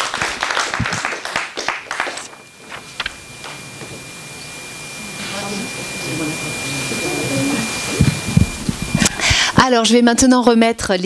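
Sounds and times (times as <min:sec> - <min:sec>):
high-pitched whine: 0:01.2 - 0:10.0
faint murmuring voices: 0:03.6 - 0:09.6.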